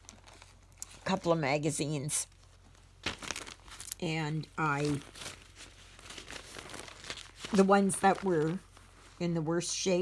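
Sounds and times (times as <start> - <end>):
magazine pages rustling: 0.0 - 1.2, 2.3 - 9.3.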